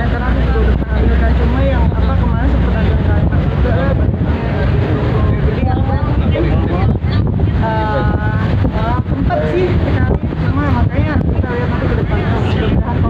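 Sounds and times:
voices talking: 0:00.0 - 0:13.0
wind rumble on microphone: 0:00.0 - 0:13.0
microphone handling noise: 0:00.6 - 0:13.0.

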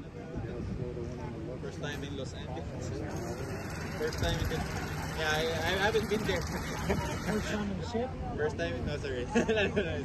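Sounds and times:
indistinct conversation: 0:00.0 - 0:10.0.

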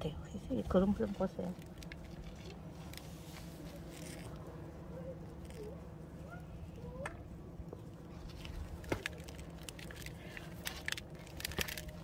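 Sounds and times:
soil crumbling and roots rustling: 0:00.5 - 0:05.8, 0:07.7 - 0:12.0.

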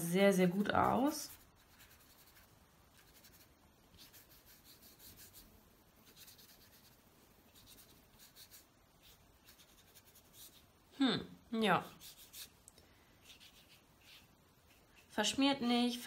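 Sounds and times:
brush swishing on paper: 0:00.4 - 0:10.8, 0:11.9 - 0:12.6, 0:13.2 - 0:15.4.

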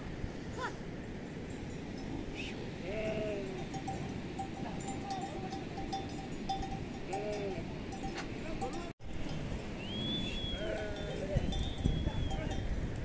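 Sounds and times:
animal bell tinkling: 0:03.1 - 0:09.8, 0:10.6 - 0:13.0.

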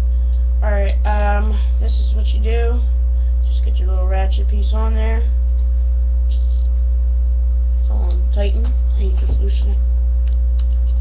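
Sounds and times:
low electrical hum: 0:00.0 - 0:11.0
steady high tone: 0:06.3 - 0:06.7.

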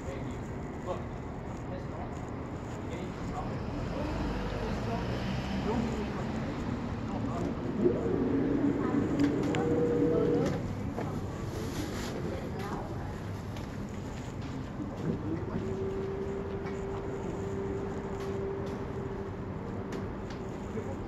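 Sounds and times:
street and traffic noise: 0:00.0 - 0:21.0
distant indistinct voices: 0:01.7 - 0:13.9.

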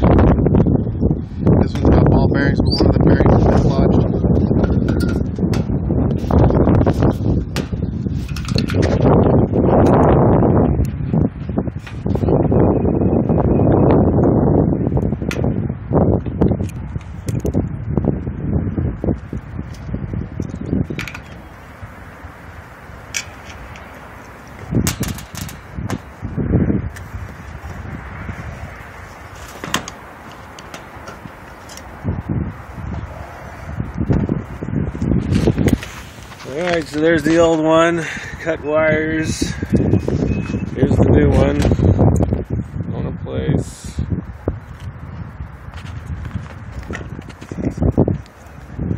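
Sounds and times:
loud rustling and handling: 0:28.9 - 0:32.0, 0:35.3 - 0:37.6.

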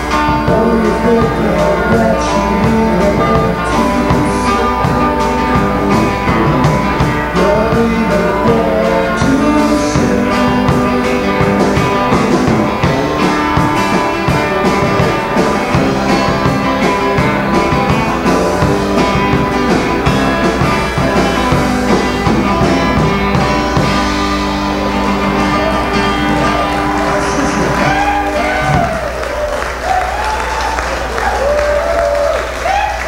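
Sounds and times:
electric guitar: 0:00.0 - 0:33.0
live rock band playing: 0:00.0 - 0:33.0.

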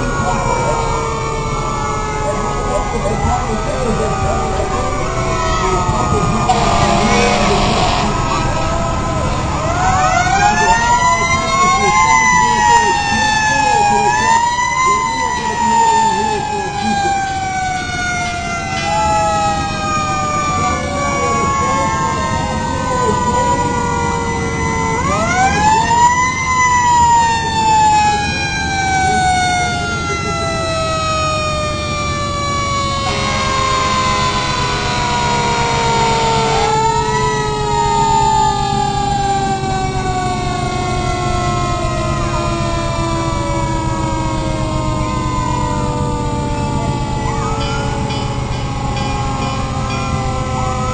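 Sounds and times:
fire truck sirens wailing: 0:00.0 - 0:50.9
truck engines rumbling: 0:00.0 - 0:50.9.

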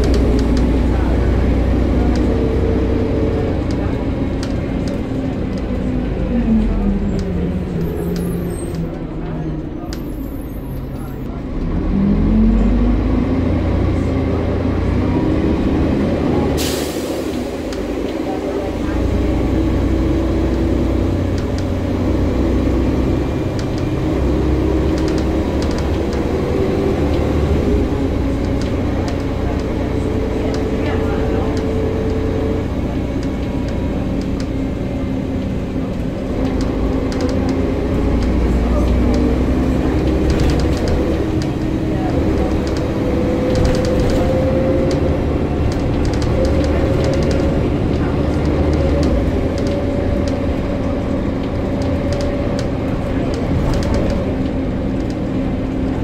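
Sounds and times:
bus engine pulling through gears: 0:00.0 - 0:56.0.

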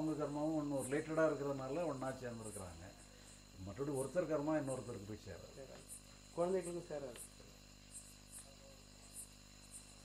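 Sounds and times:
man speaking: 0:00.0 - 0:03.0, 0:06.4 - 0:07.2
insects chirping: 0:00.0 - 0:10.0.

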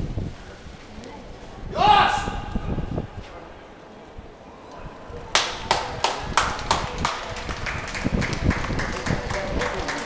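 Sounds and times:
spectators clapping in unison: 0:05.3 - 0:10.0.

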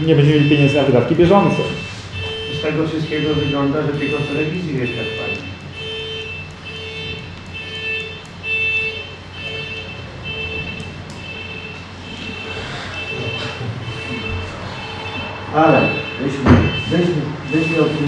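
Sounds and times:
electronic beeper beeping: 0:00.2 - 0:18.0.

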